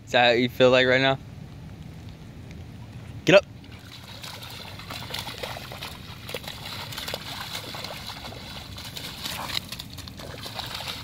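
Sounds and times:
dog splashing through puddle: 3.6 - 11.0.

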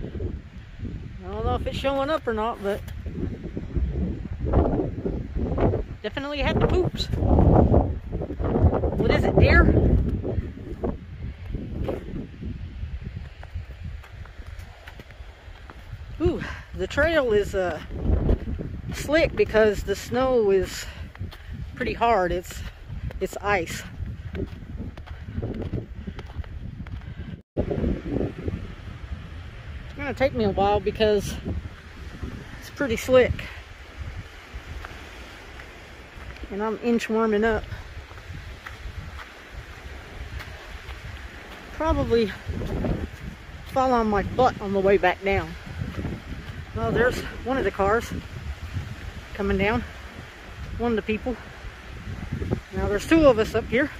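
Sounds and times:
wind buffeting microphone: 0.0 - 53.9
footsteps on icy gravel: 13.1 - 27.3, 34.2 - 49.3.

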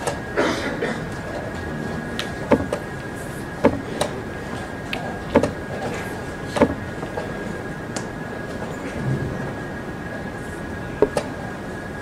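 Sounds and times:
hall hum with high whine: 0.0 - 12.0.

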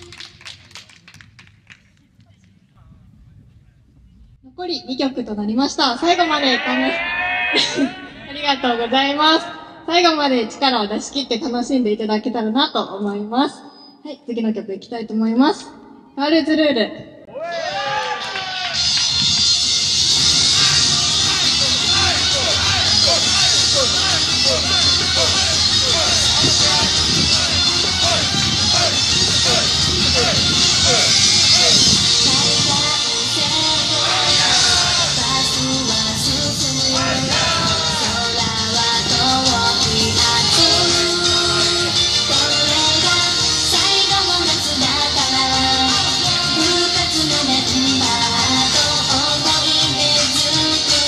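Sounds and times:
scattered hand claps: 0.0 - 2.6
pop song over loudspeakers: 5.9 - 11.9, 17.6 - 51.0
backing music: 18.3 - 51.0
women singing: 32.2 - 51.0.

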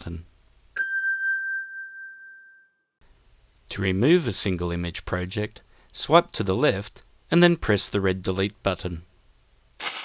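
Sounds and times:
electronic ding: 0.8 - 2.8.

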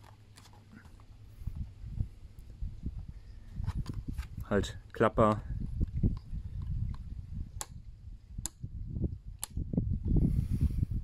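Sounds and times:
wind rumble on microphone: 1.3 - 11.0.

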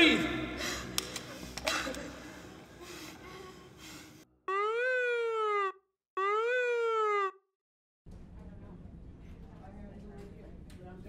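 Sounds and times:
emergency vehicle siren wailing: 4.5 - 7.4.

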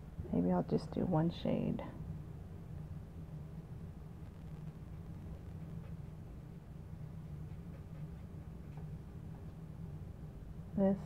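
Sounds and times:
faint room noise: 0.0 - 11.0
low steady hum: 0.0 - 11.0.

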